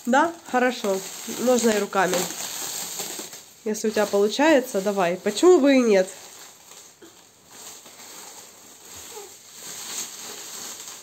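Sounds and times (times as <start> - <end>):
plastic film crinkling and tearing: 0.0 - 11.0.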